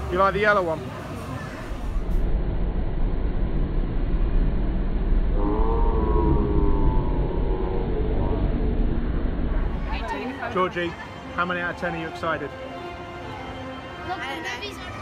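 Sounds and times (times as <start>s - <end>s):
ride low rumble: 1.0s - 10.7s
long high falling note: 5.2s - 10.1s.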